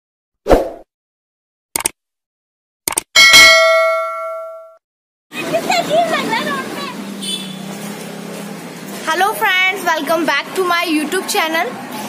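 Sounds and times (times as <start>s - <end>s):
quick double clicks: 1.8s - 2.0s, 2.8s - 3.1s
bell ding: 3.2s - 4.8s.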